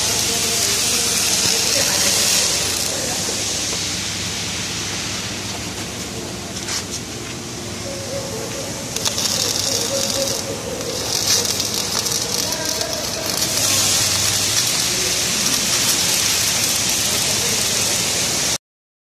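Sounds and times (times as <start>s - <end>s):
electric arc welding crackling hiss: 0.0s - 18.6s.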